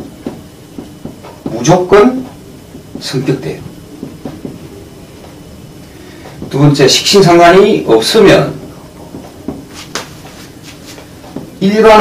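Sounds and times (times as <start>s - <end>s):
marker writing on whiteboard: 0.0s - 7.4s, 8.0s - 12.0s.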